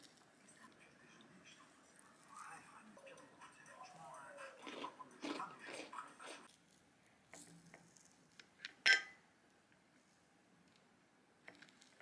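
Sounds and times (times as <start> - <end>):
fork clinking on plate: 8.8 - 9.2.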